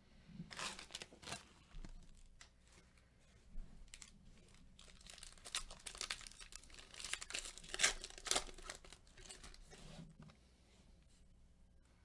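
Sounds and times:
foil wrapper crinkling: 0.5s - 2.8s, 3.8s - 9.7s.

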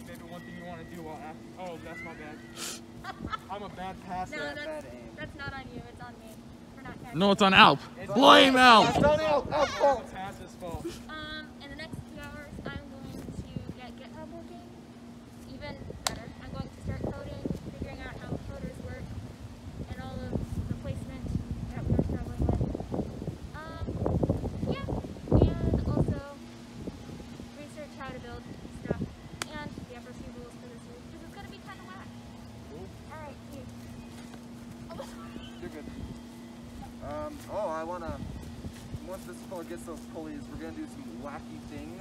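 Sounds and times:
indistinct voices talking: 0.0s - 10.2s.

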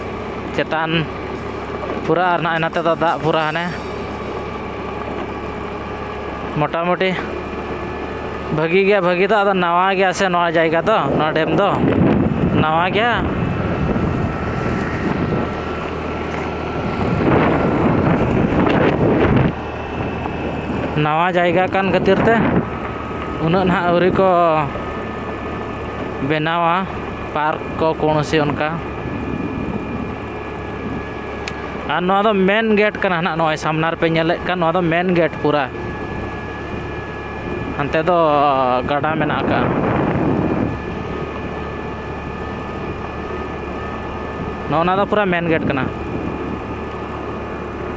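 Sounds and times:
faint steady whine: 0.0s - 47.9s
vehicle engine hum: 0.0s - 47.9s
wind rushing over microphone: 10.5s - 26.2s, 26.9s - 31.9s, 35.8s - 47.9s.

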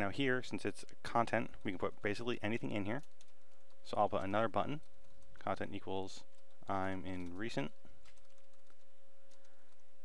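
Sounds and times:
computer keyboard typing: 1.1s - 10.0s.

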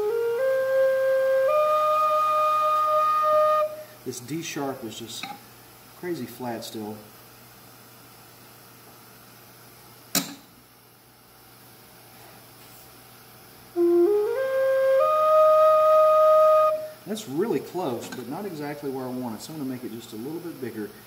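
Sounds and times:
flute playing short notes: 0.0s - 3.9s, 13.8s - 17.0s.

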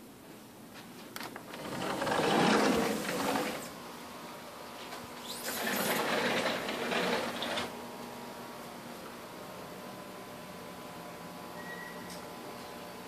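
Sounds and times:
sliding glass door rumbling: 1.4s - 3.8s, 5.2s - 7.8s.

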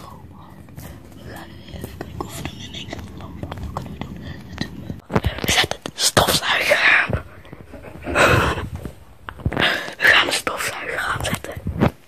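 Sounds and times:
people whispering: 0.0s - 11.7s.

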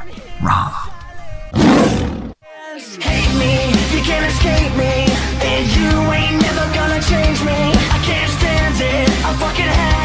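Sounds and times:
man growling roar: 0.3s - 2.4s.

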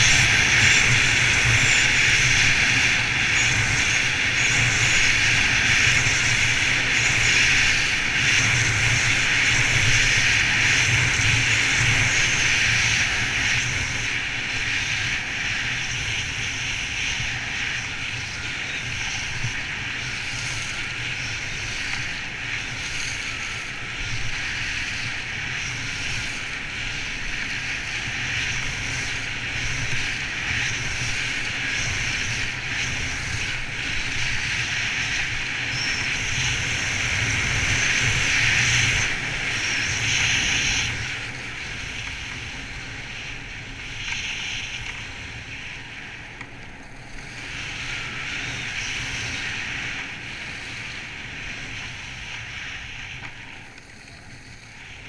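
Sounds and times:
skis scraping over snow: 0.0s - 55.0s
wind rushing over microphone: 0.0s - 55.0s.

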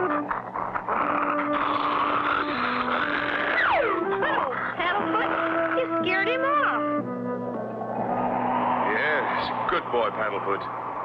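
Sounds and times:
cartoon dog whines: 0.0s - 6.8s
raspy cartoon dog noise: 0.0s - 6.8s
background music held notes: 0.0s - 11.0s.

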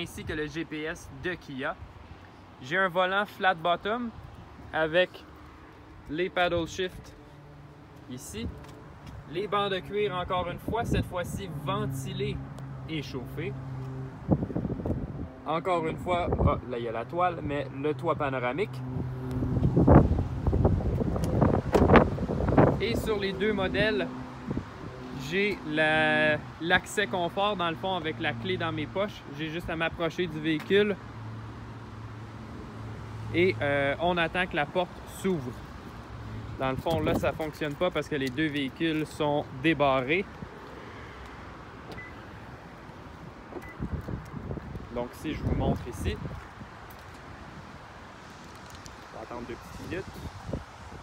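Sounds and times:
faint footstep clicks: 7.9s - 9.2s, 45.7s - 47.3s
wind buffeting phone microphone: 10.3s - 11.4s, 14.2s - 16.7s, 18.9s - 25.1s, 36.6s - 37.6s, 43.1s - 47.8s, 49.6s - 51.0s
short high beeps: 41.9s - 42.2s.

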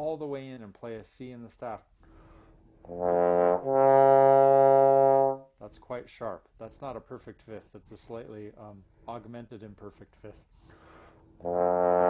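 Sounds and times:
bass trombone playing: 2.8s - 5.4s, 11.4s - 12.0s.

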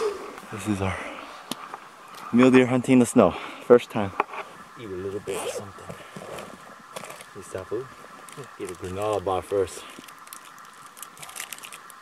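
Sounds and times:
plastic wrapper tearing and crinkling: 9.9s - 12.0s.

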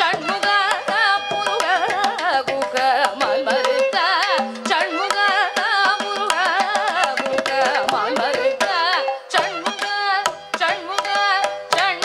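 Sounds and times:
woman singing with ornaments: 0.0s - 12.0s.

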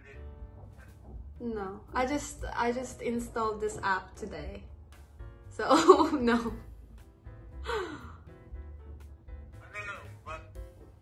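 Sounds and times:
soft background music: 0.0s - 11.0s
person gasping: 7.6s - 8.3s.

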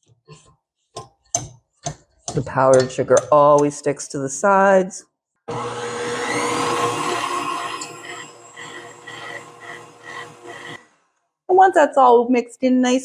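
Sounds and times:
stand mixer motor hum: 5.5s - 11.0s.

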